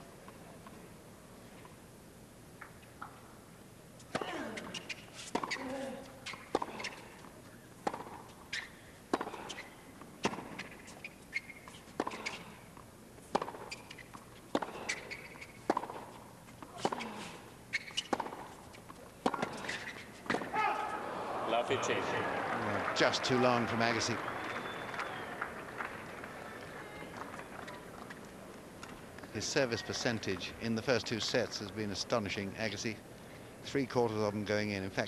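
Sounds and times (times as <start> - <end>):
tennis ball bouncing: 4.1 - 5.6, 6.2 - 20.8
racket hitting tennis ball: 4.1 - 12.6, 13.2 - 21.0.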